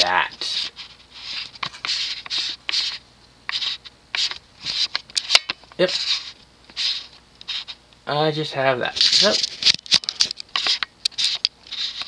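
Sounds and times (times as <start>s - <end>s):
scratchy rustling: 0.0s - 7.8s, 8.9s - 9.8s, 10.5s - 12.0s.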